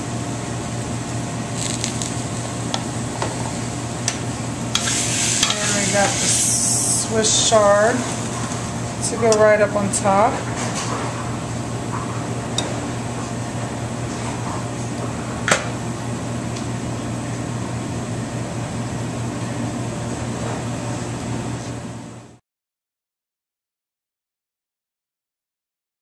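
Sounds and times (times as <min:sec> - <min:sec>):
low mechanical hum: 0:00.0 - 0:22.4.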